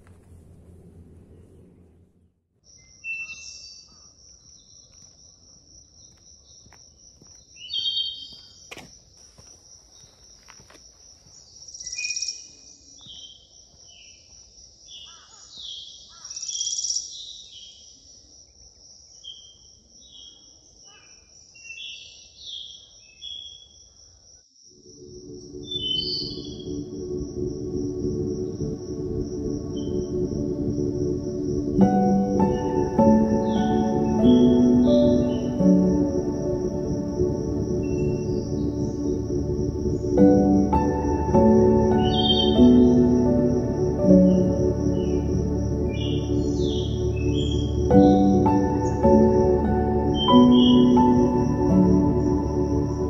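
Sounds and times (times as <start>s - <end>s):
songbirds chirping: 0.0s - 24.3s, 24.9s - 53.0s
high-pitched insect drone: 24.7s - 53.0s.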